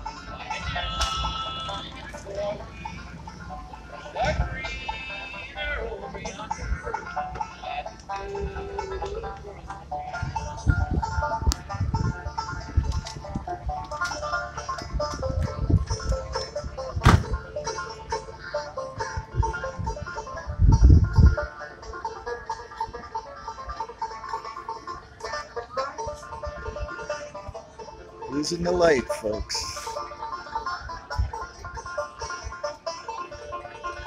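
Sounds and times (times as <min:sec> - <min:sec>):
banjo picking: 0:00.0 - 0:34.0.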